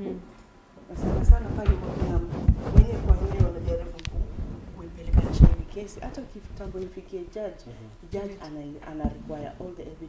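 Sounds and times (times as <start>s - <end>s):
woman talking: 0.9s - 10.0s
dull low thumps: 1.0s - 7.4s.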